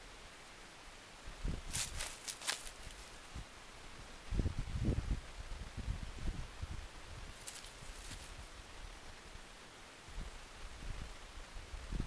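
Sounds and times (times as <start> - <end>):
dry leaves rustling and crunching: 1.6 - 3.2, 7.4 - 8.5
low thuds and scuffs: 1.7 - 3.0.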